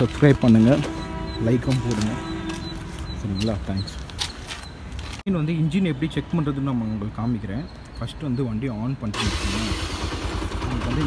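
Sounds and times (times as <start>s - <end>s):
man speaking: 0.0s - 2.4s, 3.1s - 4.0s.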